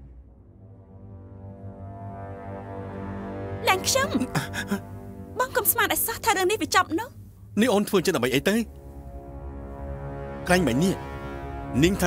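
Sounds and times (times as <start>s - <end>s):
low droning chord: 0.0s - 12.0s
woman's voice: 3.6s - 4.4s, 5.4s - 7.2s.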